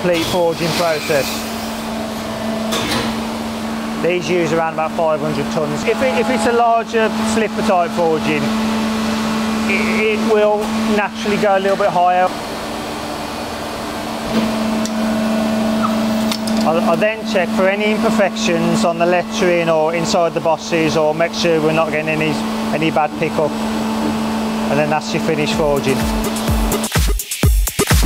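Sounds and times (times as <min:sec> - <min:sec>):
hydraulic press humming: 0:00.0 - 0:26.9.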